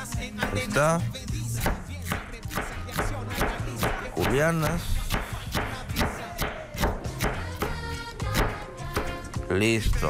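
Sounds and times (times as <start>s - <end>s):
knife chopping on wooden board: 1.6s - 9.3s.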